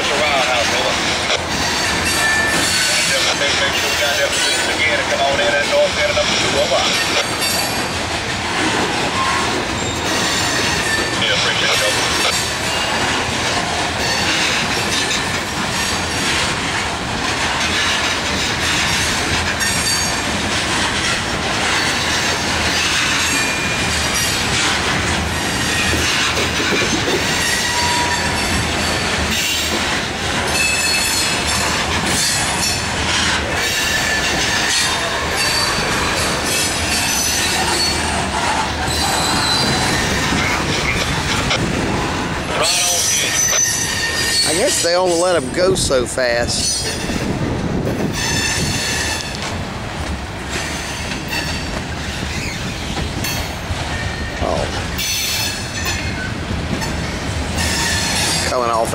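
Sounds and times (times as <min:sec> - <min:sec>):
train wheels clattering over rail joints: 0:00.0 - 0:58.9
high-pitched wheel squeals: 0:01.6 - 0:03.1, 0:09.1 - 0:11.2, 0:27.3 - 0:29.6, 0:38.9 - 0:41.0, 0:42.6 - 0:44.9.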